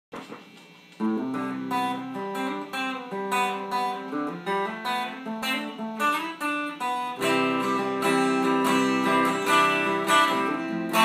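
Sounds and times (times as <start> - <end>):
electric guitar picking chords: 0.2 - 11.0.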